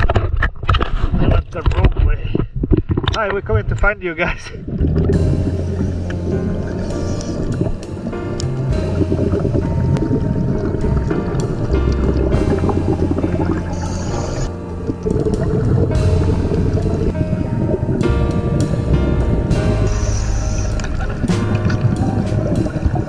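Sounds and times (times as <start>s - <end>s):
background music with bass line: 4.9s - 23.0s.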